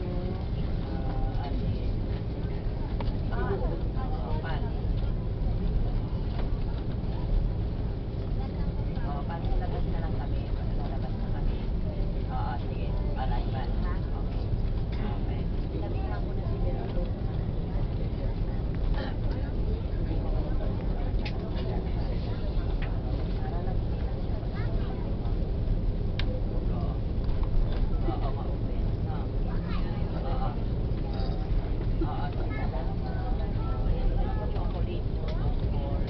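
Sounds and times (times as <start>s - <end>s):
jet engines low rumble: 0.0s - 36.0s
passengers chatter: 0.0s - 36.0s.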